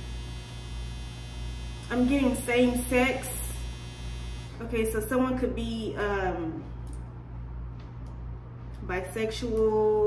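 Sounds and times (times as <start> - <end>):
faint high buzz: 0.0 - 5.0
electrical mains hum: 0.0 - 10.0
woman speaking: 1.9 - 3.6, 4.6 - 6.8, 8.8 - 10.0.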